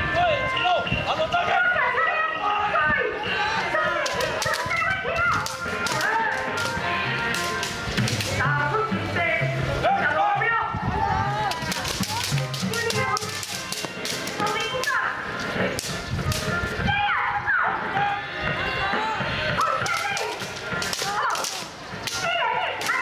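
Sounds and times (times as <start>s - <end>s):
children shouting: 0.0s - 8.2s, 9.9s - 15.3s, 15.9s - 23.0s
bamboo swords clacking: 4.0s - 8.4s, 11.4s - 15.0s, 15.7s - 16.5s, 19.6s - 23.0s.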